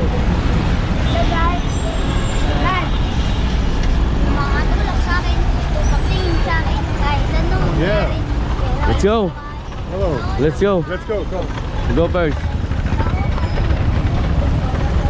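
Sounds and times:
heavy road traffic rumble: 0.0 - 15.0.

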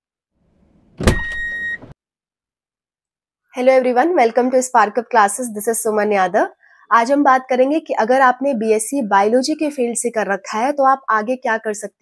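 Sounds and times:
hit with high beep tone: 1.0 - 1.9.

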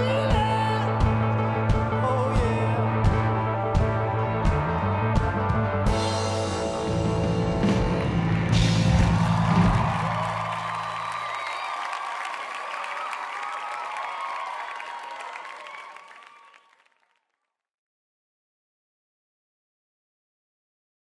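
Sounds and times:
crowd cheering and applauding: 6.8 - 17.4
drum hits: 7.2 - 10.5.

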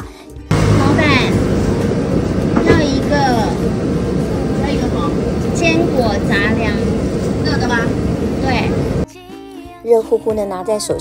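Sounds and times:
busy street traffic roar: 0.5 - 9.0
faint steady hum: 0.5 - 9.0.

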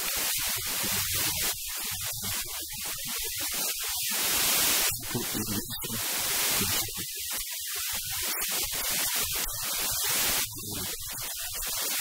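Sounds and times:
static-like hiss: 0.0 - 12.0.

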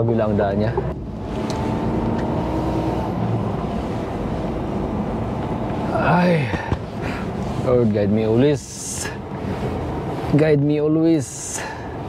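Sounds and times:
truck engine and road noise: 0.0 - 12.0.

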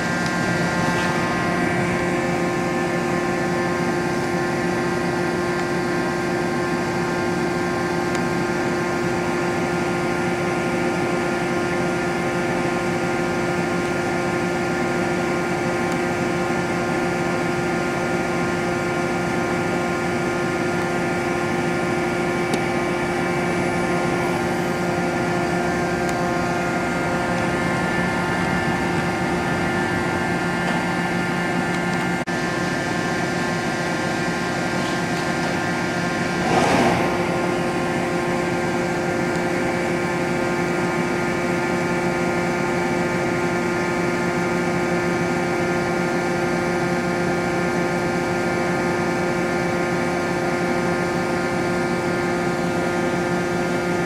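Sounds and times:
lathe machine hum: 0.0 - 54.0.

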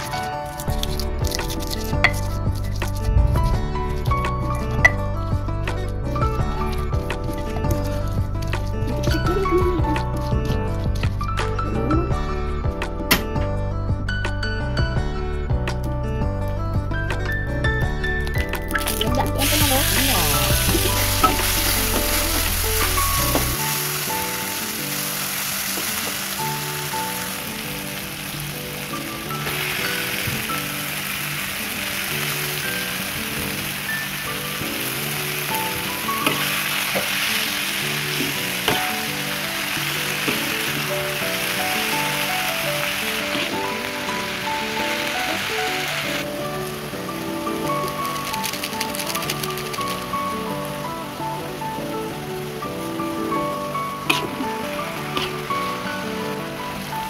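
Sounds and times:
background music: 0.0 - 57.0
oil sizzling in a wok: 18.8 - 57.0.

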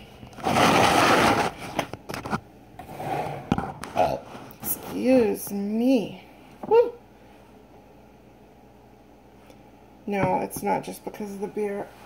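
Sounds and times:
phone scraping on table: 0.4 - 4.0.

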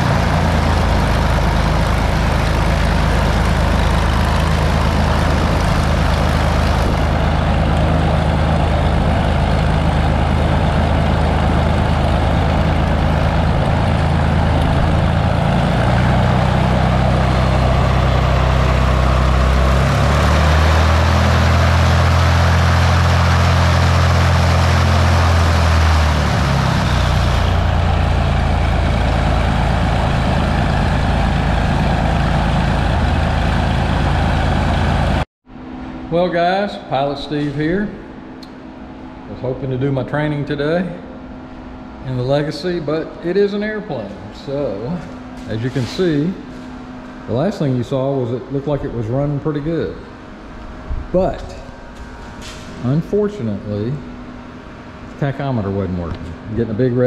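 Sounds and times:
aircraft propeller engine running: 0.0 - 39.5.

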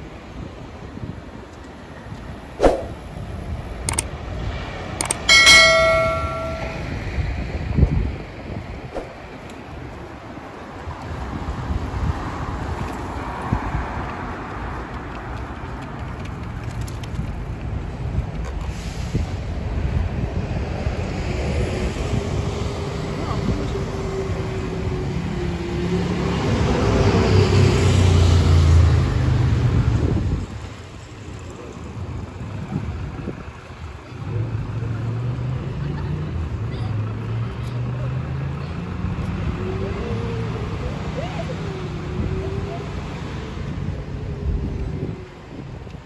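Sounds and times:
city street traffic: 0.0 - 46.0
wind buffeting microphone: 0.3 - 25.7, 39.0 - 46.0.

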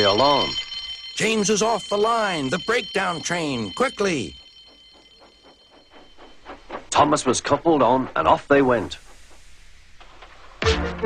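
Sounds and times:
high alarm tone: 0.0 - 9.2
steam locomotive chuffing: 0.0 - 10.6.

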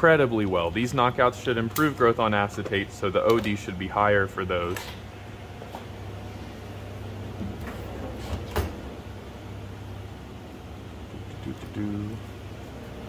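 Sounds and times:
laboratory equipment humming: 0.0 - 13.0.

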